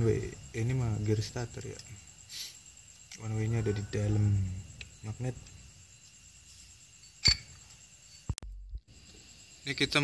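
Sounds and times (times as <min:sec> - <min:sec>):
sharp metallic clink: 0:07.0 - 0:08.2.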